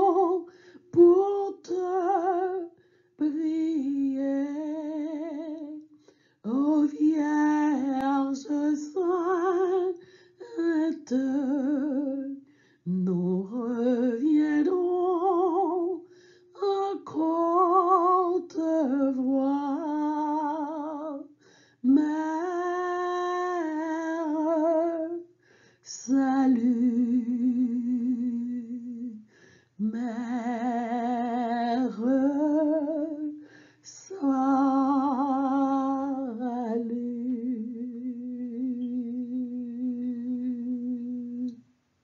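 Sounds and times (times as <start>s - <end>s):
woman singing a hymn: 0.0s - 41.6s
singer breathing: 0.5s - 0.9s, 10.0s - 10.4s, 16.0s - 16.5s, 21.4s - 21.8s, 25.4s - 25.8s, 29.3s - 29.8s, 33.4s - 33.9s.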